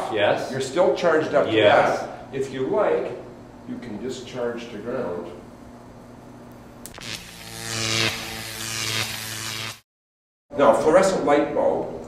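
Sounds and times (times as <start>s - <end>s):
steady electric buzz: 6.4s - 9.9s
sharp static snap: 6.5s - 9.8s.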